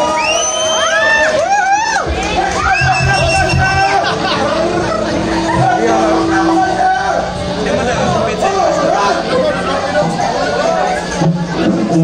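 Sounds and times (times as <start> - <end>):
crowd shouting along: 0.0 - 11.1
live rock band playing: 2.0 - 10.1
drums and bass pulsing: 2.0 - 10.3.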